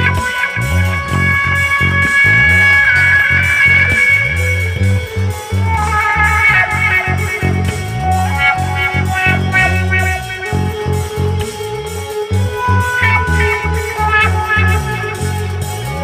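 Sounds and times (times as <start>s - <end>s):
amplified hurdy-gurdy melody: 0.0s - 16.0s
bass line: 0.0s - 16.0s
steady beat: 0.0s - 16.0s.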